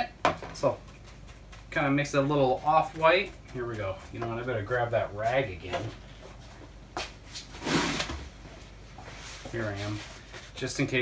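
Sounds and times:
scraping rustle of rag: 9.0 - 10.6.

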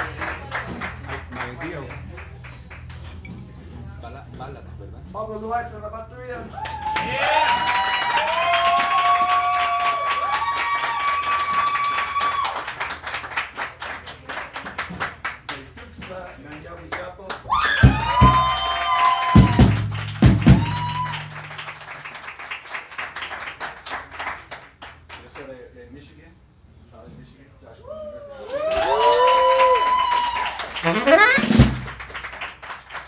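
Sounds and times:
people clapping: 0.0 - 3.2, 6.6 - 25.6, 28.4 - 33.0
drum kit: 17.8 - 21.8, 30.8 - 32.2
electric bass: 19.4 - 21.8, 30.8 - 32.2
tenor saxophone: 30.8 - 32.1.

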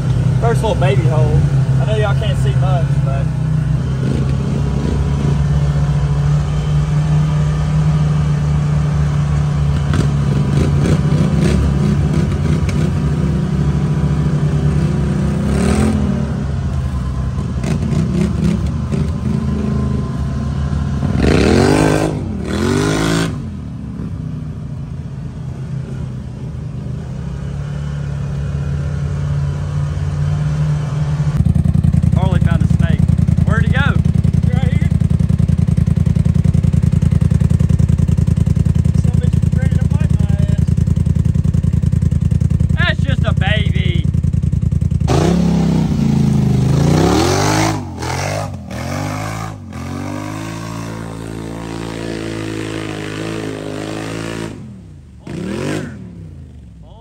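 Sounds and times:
off-road vehicle engine running: 0.0 - 57.0.

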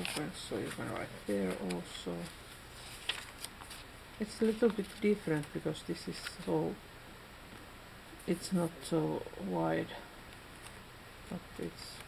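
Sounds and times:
paper pages rustling: 0.0 - 6.6, 10.5 - 10.8
paper page flicks: 3.0 - 3.8.

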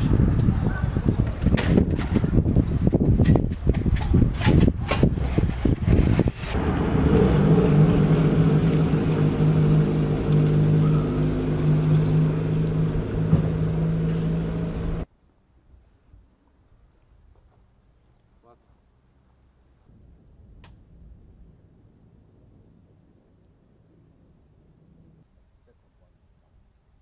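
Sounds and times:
wind buffeting microphone: 0.0 - 15.1
steady engine hum: 6.5 - 15.1.

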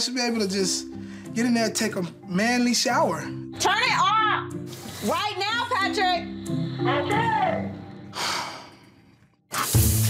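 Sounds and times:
shower head spraying water: 4.6 - 5.6, 9.5 - 10.0
breathy exhale: 8.1 - 9.1.

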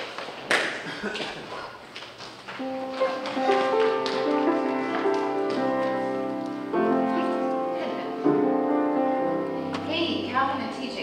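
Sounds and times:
piano chords: 2.6 - 11.0.

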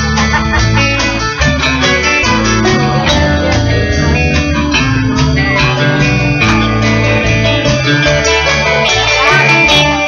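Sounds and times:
bass line: 0.0 - 10.0
light drums: 0.0 - 10.0
mandolin: 0.0 - 10.0
plucked guitar: 0.0 - 10.0.

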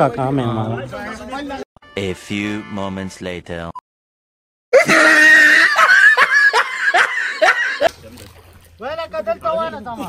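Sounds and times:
person laughing loudly: 4.8 - 7.9.

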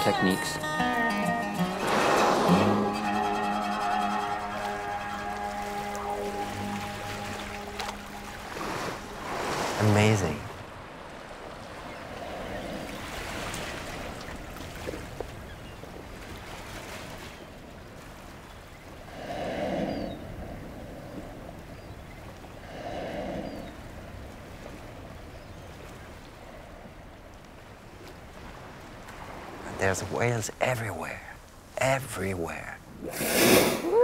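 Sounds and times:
wind: 0.0 - 34.0
whales blowing: 1.0 - 27.3, 32.9 - 34.0
hiss of water: 33.0 - 34.0.

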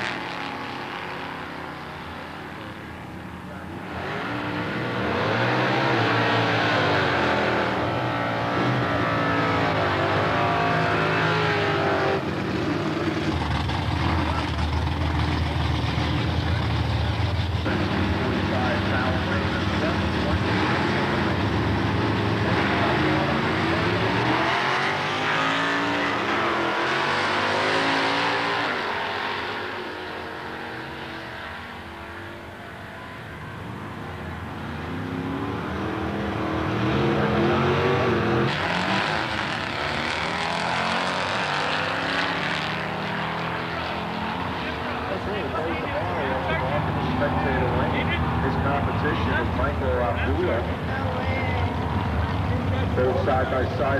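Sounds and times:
drag racing cars accelerating: 0.0 - 53.9.

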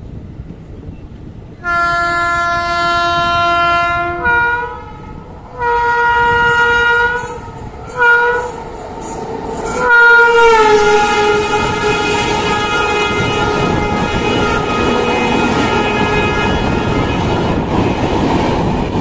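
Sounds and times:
locomotive horn blasts: 1.6 - 8.6, 9.6 - 17.6
train rail clatter: 5.0 - 19.0.

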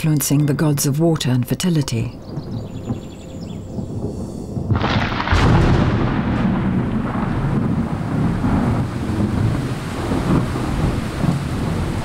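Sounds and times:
distant thunder rumble: 1.6 - 12.0.

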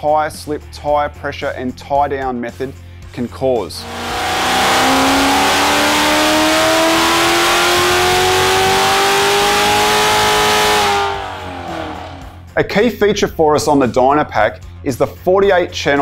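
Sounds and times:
car engine revving at full throttle: 3.8 - 12.4.

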